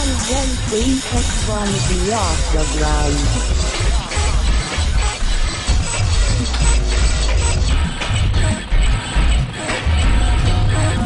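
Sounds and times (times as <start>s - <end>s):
techno music: 0.0s - 11.0s.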